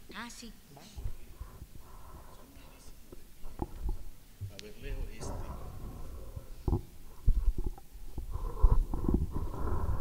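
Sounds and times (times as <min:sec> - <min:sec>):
microphone handling thumps and rubbing: 0:01.0 - 0:02.3, 0:03.4 - 0:10.0.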